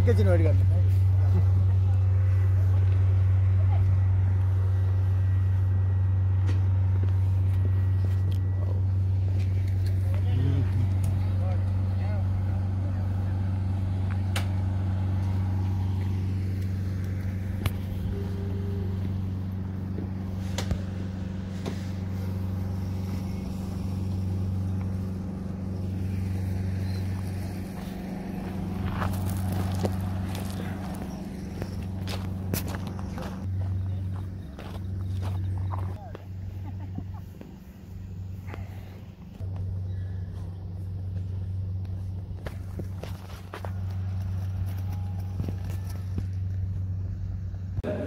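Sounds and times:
turboprop engine humming: 0.0s - 48.0s.

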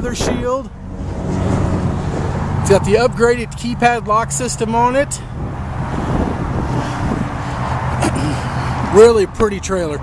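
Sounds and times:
engine hum: 0.0s - 10.0s.

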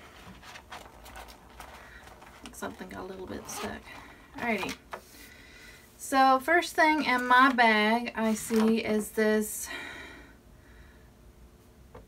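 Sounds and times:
zipper being tugged open: 3.4s - 4.1s.

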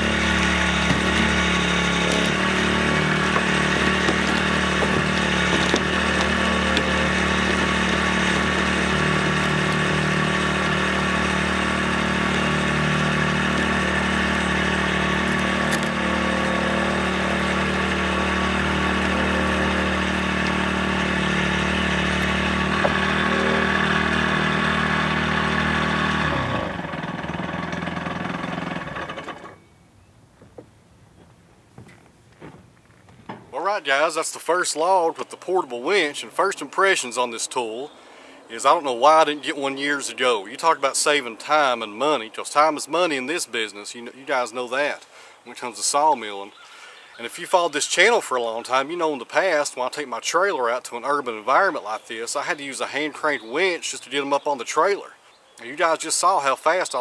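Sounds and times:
small gas engine running: 0.0s - 29.7s.

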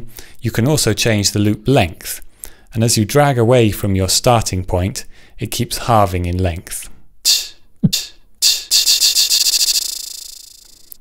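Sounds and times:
retriggering recorded loop: 7.3s - 11.0s
steady buzzing tone: 8.0s - 11.0s.

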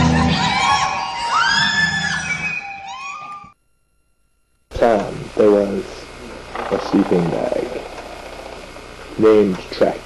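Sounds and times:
high arching squeals: 6.4s - 8.8s.

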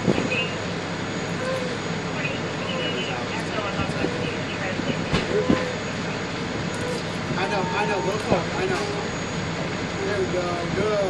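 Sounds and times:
large vehicle rumble: 0.0s - 11.0s.

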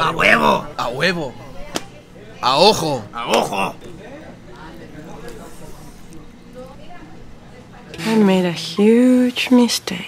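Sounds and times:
faint background voices: 0.0s - 9.1s
restaurant room noise: 0.0s - 10.0s.

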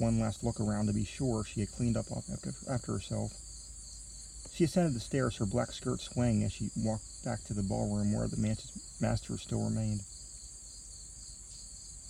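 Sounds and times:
insect chorus trilling: 0.0s - 12.0s.

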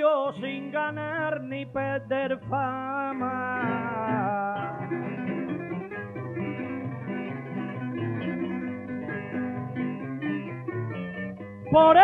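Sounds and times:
person singing: 0.0s - 5.3s, 11.7s - 12.0s
plucked guitar accompaniment: 0.0s - 12.0s.

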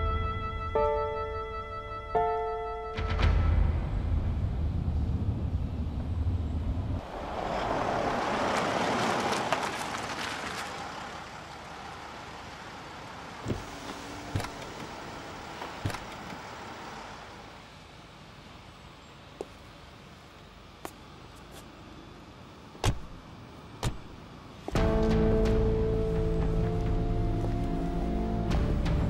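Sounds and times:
car engine rumble: 2.9s - 29.0s
vehicle rushing by: 4.4s - 15.6s.

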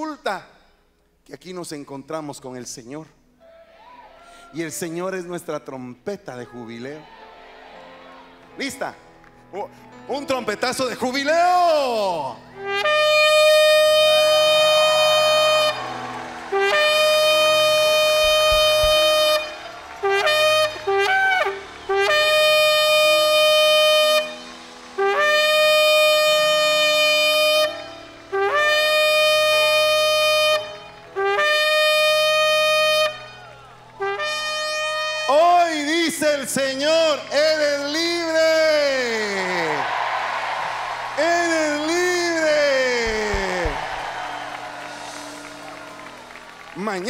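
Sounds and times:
shofar blasts: 12.6s - 37.8s, 41.2s - 46.3s.

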